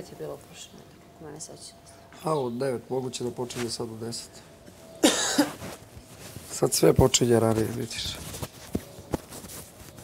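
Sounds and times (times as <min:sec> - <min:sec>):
person coughing: 0:05.0 - 0:05.6.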